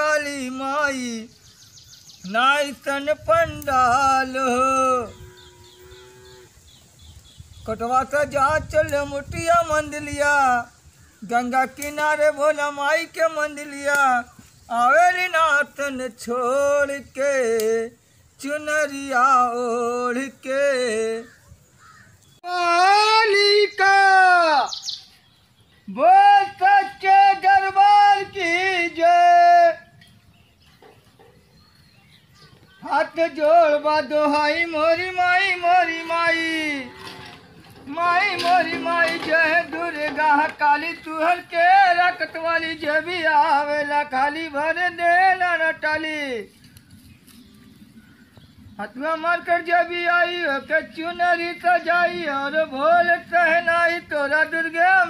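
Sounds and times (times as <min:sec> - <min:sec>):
man singing: 0:00.0 - 0:01.4, 0:02.2 - 0:05.3, 0:07.6 - 0:21.4, 0:22.4 - 0:24.7, 0:25.8 - 0:30.0, 0:32.8 - 0:46.5, 0:48.8 - 0:55.0
bird chirps: 0:00.7 - 0:03.0, 0:05.0 - 0:08.0, 0:23.4 - 0:26.2, 0:29.7 - 0:36.5
person singing: 0:37.8 - 0:46.5.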